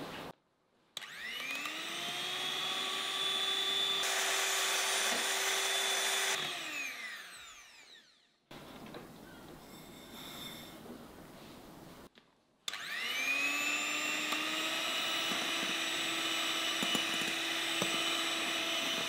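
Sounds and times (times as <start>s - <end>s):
electric hand mixer whining: 1.0s - 8.4s, 12.7s - 19.0s.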